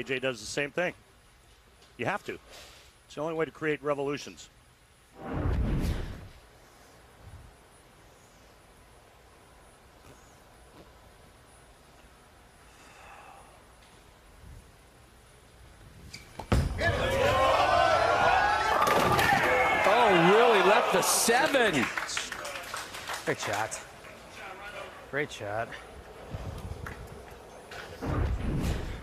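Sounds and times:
crowd cheering and shouting: 16.8 - 21.8.

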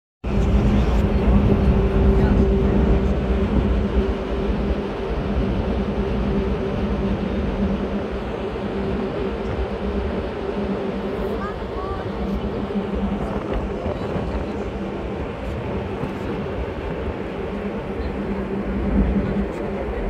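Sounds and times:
diesel engine droning: 0.2 - 20.0.

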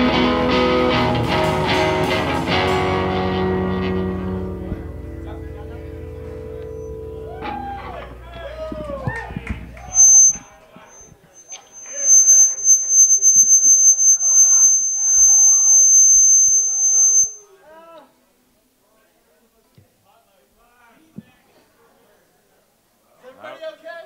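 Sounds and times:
steady high-pitched tone: 9.8 - 17.5.

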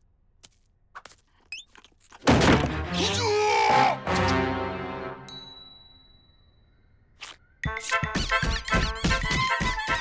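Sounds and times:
music: 2.3 - 5.4, 7.6 - 10.0.

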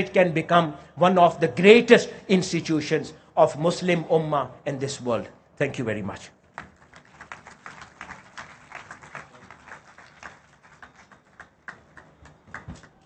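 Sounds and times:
audience applauding: 6.6 - 13.0.

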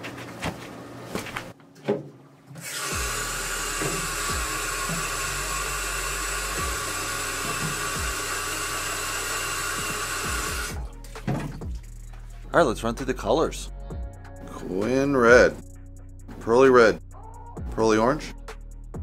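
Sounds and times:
tap water running into plastic jar: 2.6 - 10.7.

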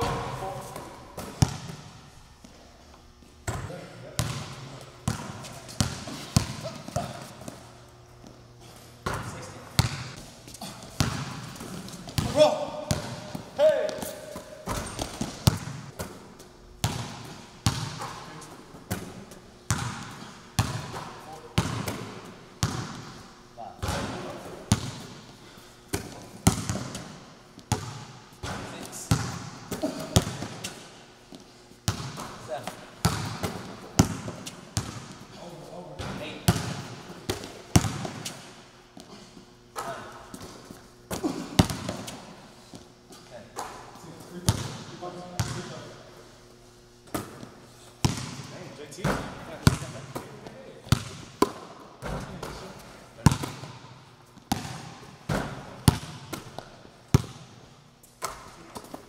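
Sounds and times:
basketball bouncing in echoing gym: 0.0 - 59.0.

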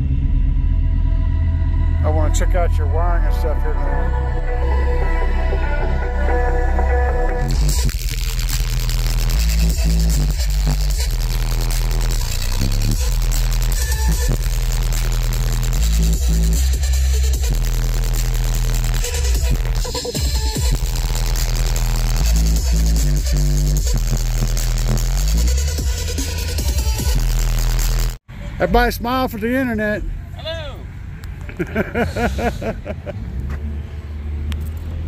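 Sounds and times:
bass-heavy electronic music: 0.0 - 30.0.

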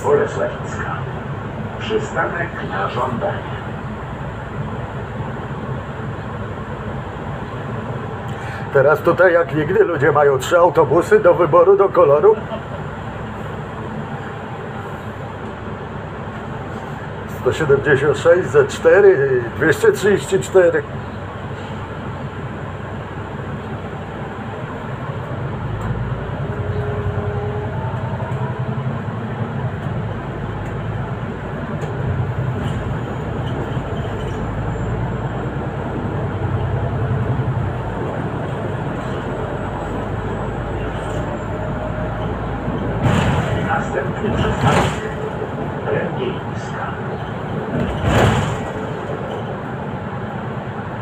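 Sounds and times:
bus engine rumble: 0.0 - 51.0
road noise: 0.0 - 51.0.

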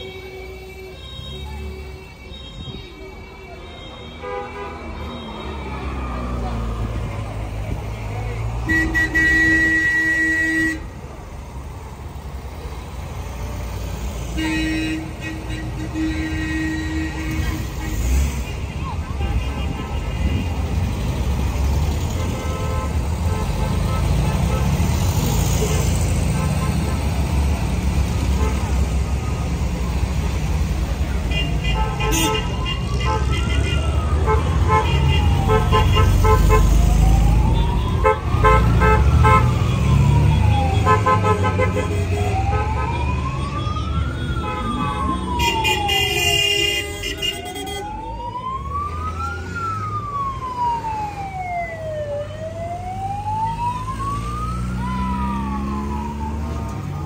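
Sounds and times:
car horn toots: 8.6 - 10.9, 31.3 - 36.7
wailing vehicle siren: 32.1 - 57.0
car engines rolling past: 32.8 - 45.6, 47.9 - 57.0.

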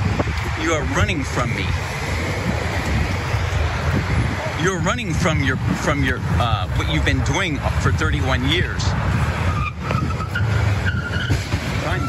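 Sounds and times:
street traffic rumble: 0.0 - 12.0
car tyres squealing: 9.1 - 12.0.

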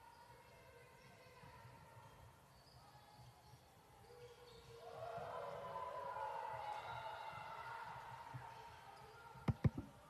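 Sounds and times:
voices echoing in a gymnasium: 0.0 - 10.0.

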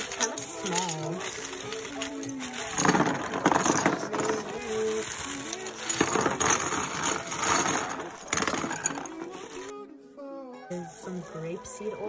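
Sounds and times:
plastic jars clattering: 0.0 - 9.7
plastic mailer bag crinkling: 0.0 - 9.7.

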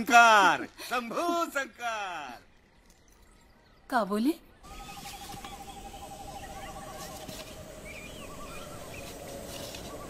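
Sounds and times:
bird chirps: 2.4 - 10.0.

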